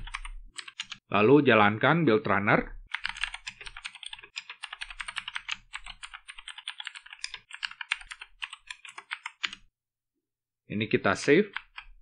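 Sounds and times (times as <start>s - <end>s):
typing on computer keyboard: 0.0s - 1.0s, 2.9s - 9.7s, 11.5s - 12.0s.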